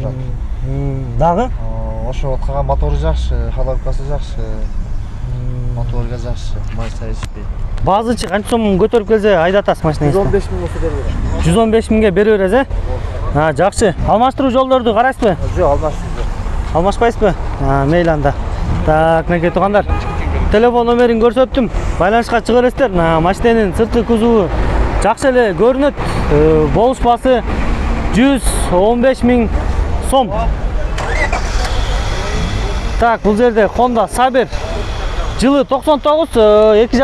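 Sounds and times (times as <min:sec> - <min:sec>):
person speaking: 0:00.0 - 0:03.5, 0:04.3 - 0:09.1
car engines rumbling: 0:00.0 - 0:37.0
faint background voices: 0:30.4 - 0:33.8.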